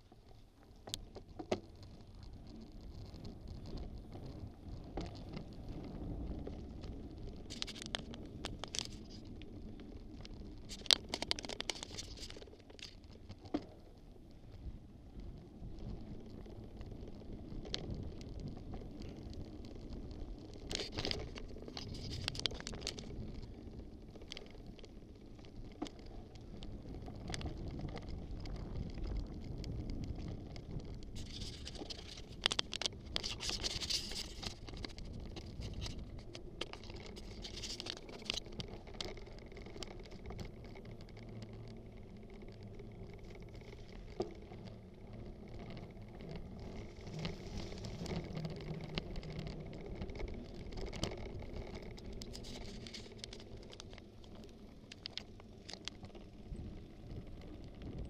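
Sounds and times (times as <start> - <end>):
bike clicks and rattles: 0.0 - 58.0
bike tyres crunching over dirt: 0.0 - 58.0
steady low rumble: 1.7 - 58.0.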